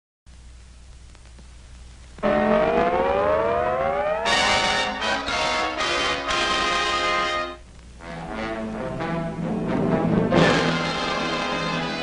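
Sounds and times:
rising siren-like wail: 2.2s - 6.0s.

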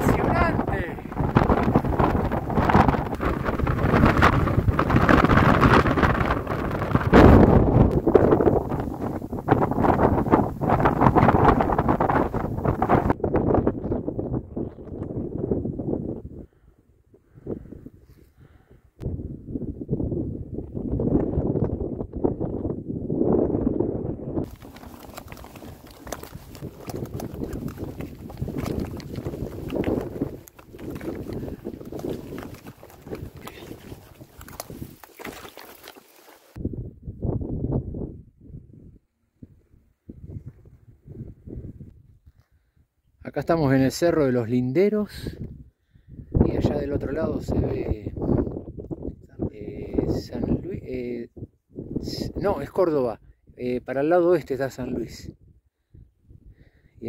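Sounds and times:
wind buffeting microphone: 0.0s - 42.4s, 45.2s - 53.6s.

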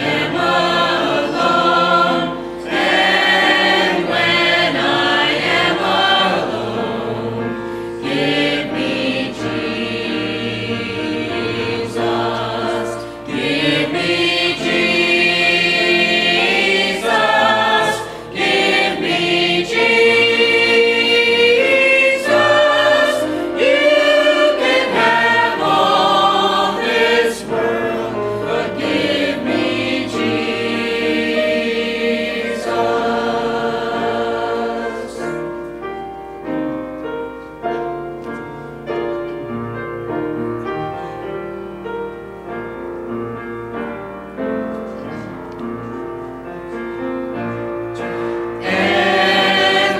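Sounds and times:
choir singing a hymn: 0.0s - 49.9s.

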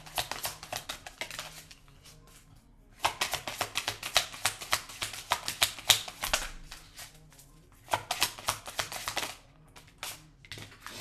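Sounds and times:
cards riffling: 0.0s - 1.8s, 7.9s - 11.0s.

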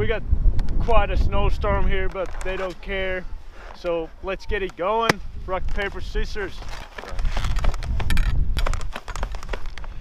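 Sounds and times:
wind buffeting microphone: 0.0s - 10.0s
handling clicks and rustles: 1.9s - 10.0s.

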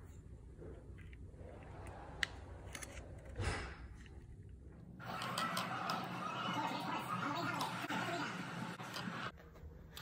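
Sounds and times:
handling and room noise: 0.0s - 6.4s.

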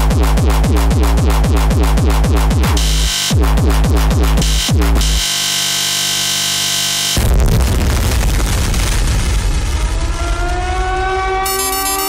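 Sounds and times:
electronic dance music: 0.0s - 7.2s, 11.4s - 12.0s
fast high ticking pattern: 0.0s - 7.2s, 11.5s - 12.0s.

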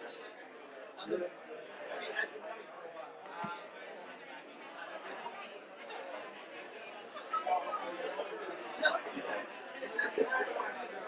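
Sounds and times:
hubbub of overlapping conversations: 0.0s - 11.0s.

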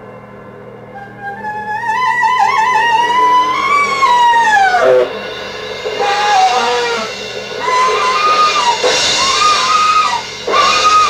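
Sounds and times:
saxophone improvising: 0.9s - 5.2s, 6.0s - 11.0s.

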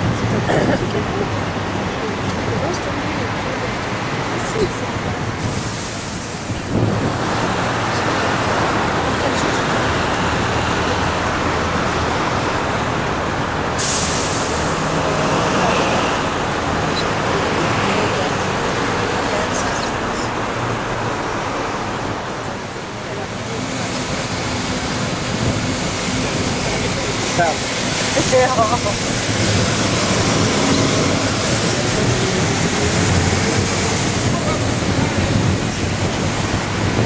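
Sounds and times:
bus engine running: 0.0s - 37.0s
street traffic: 0.0s - 37.0s
short sharp hiss: 13.8s - 14.8s.

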